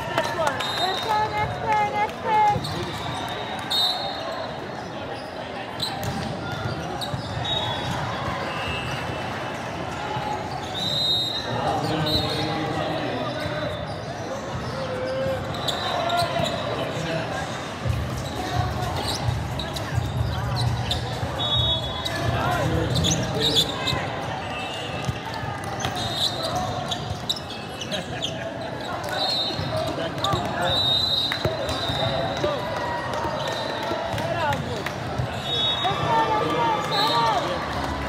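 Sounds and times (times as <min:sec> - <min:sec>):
voices of players and spectators: 0:00.0 - 0:38.0
sneakers squeaking: 0:00.2 - 0:38.0
ball bouncing on hard court: 0:05.9 - 0:08.0.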